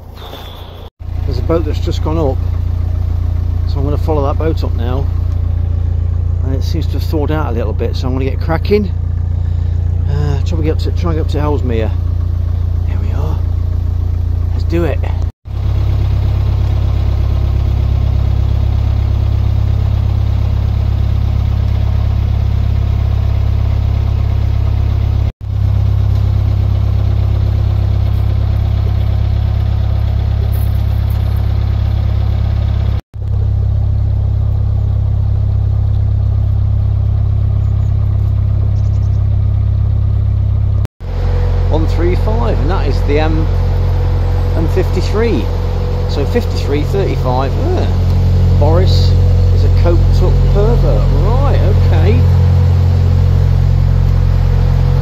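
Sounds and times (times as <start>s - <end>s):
diesel engine low drone: 0.0s - 55.0s.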